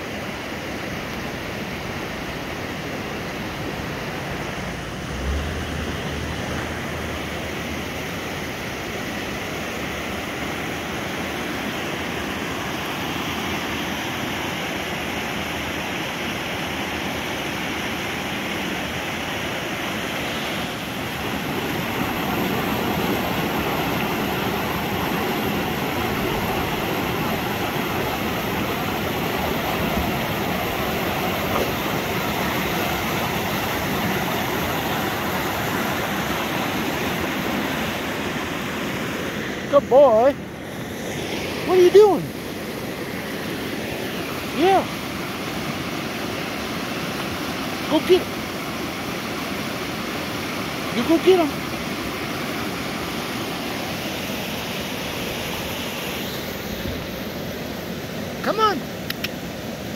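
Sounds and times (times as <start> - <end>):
river rushing over rocks: 0.0 - 59.9.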